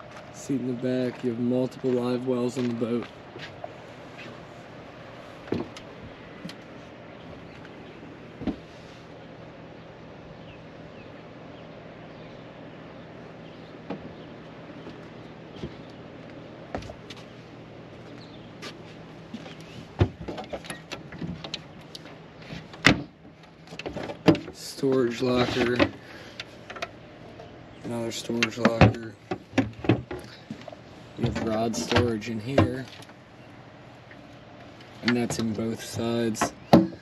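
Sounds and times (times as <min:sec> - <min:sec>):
low mechanical hum: 0:00.0 - 0:37.0.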